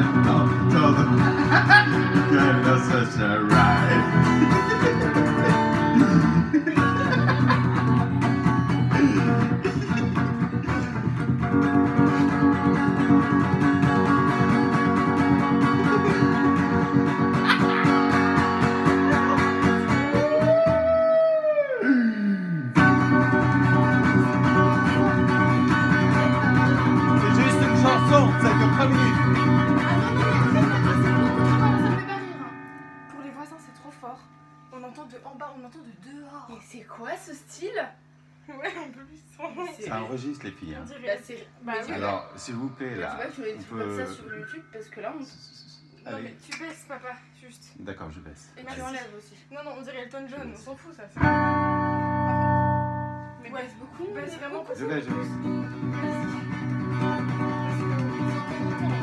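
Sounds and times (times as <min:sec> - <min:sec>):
electric guitar chords: 0:00.0 - 0:34.8, 0:51.2 - 0:59.0
guitar note sliding down: 0:22.6 - 0:34.6, 0:51.2 - 0:53.4, 0:55.1 - 0:59.0.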